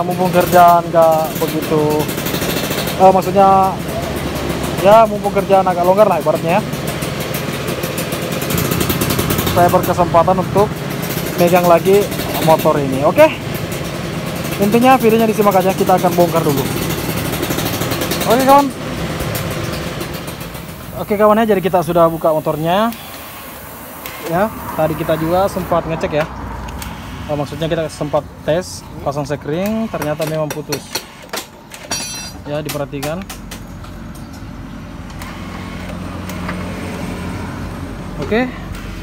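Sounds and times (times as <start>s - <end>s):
mechanical running hum: 0.1s - 25.8s, 34.9s - 39.0s.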